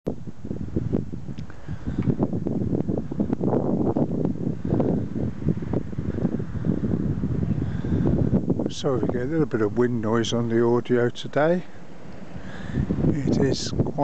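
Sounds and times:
wind buffeting microphone: 0.1 - 14.0.

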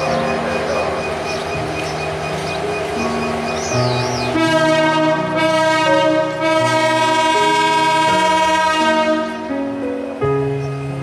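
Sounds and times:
background music: 0.0 - 11.0
locomotive air horn: 4.3 - 9.4.

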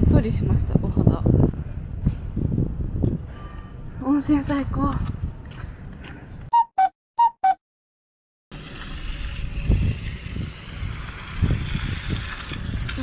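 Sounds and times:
wind rumbling on microphone: 0.0 - 6.5, 8.6 - 13.0.

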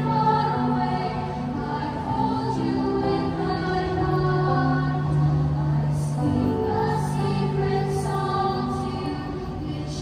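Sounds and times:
girls choir singing: 0.0 - 10.0.

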